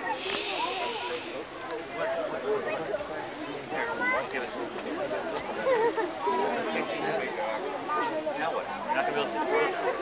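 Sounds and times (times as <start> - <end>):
hiss stopping abruptly: 0.0 - 1.4.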